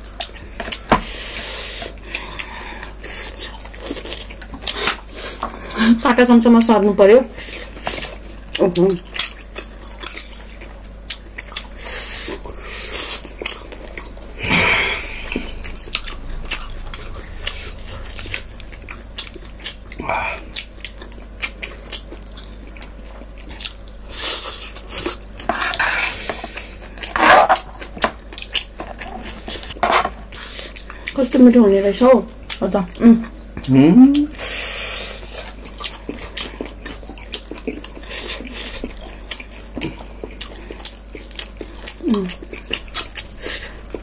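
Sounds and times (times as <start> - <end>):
chewing and slurping noodles: 7.4 - 31.2, 34.3 - 44.0.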